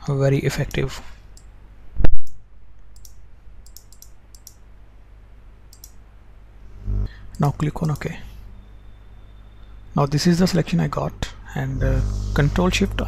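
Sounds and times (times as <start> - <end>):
steady low hum: 0.4 - 13.0
computer mouse clicking: 3.0 - 4.6, 5.7 - 6.0, 7.3 - 8.1.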